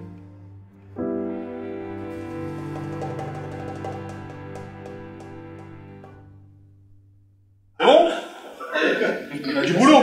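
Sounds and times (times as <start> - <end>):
held string chords: 0.0 - 7.2
piano: 0.0 - 7.3
quick percussion taps: 2.2 - 6.2.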